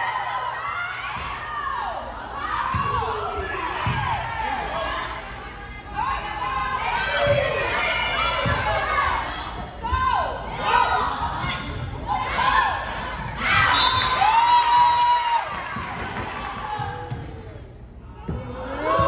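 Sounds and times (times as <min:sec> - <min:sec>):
players and spectators shouting: 0:00.0 - 0:19.0.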